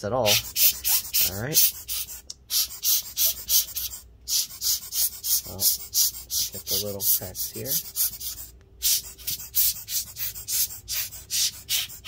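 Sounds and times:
air blower puffing hisses: 0.0 - 12.0.

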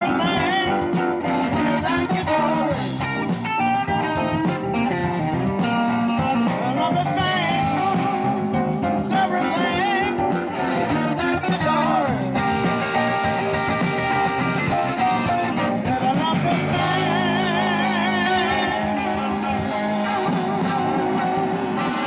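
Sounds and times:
electric guitar bending notes: 0.0 - 22.0
live blues band playing: 0.0 - 22.0.

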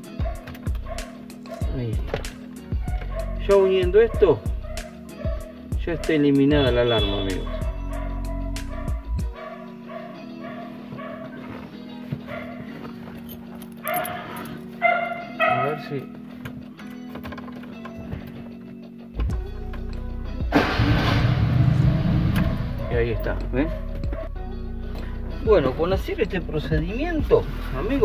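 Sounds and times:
car engine starting and running: 19.2 - 23.1.

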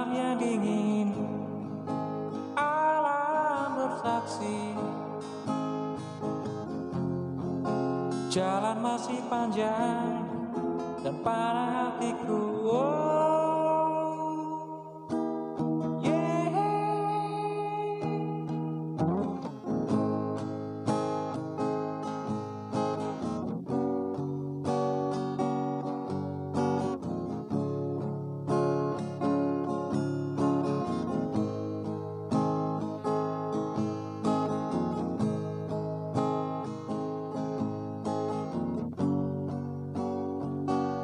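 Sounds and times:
acoustic guitar strumming: 0.0 - 41.0.

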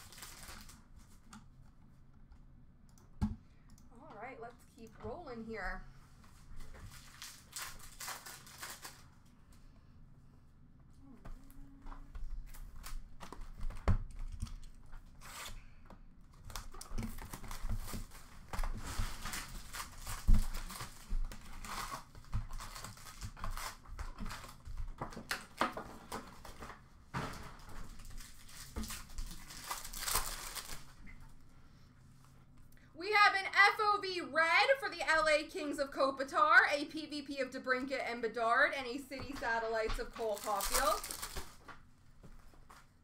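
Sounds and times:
foil wrappers tearing and crinkling: 0.0 - 0.9, 6.8 - 9.2, 16.4 - 24.7, 27.8 - 31.0, 40.1 - 41.7.

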